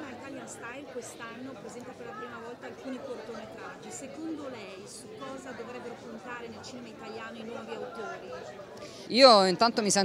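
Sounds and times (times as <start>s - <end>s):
background chatter of people: 0.0s - 10.0s.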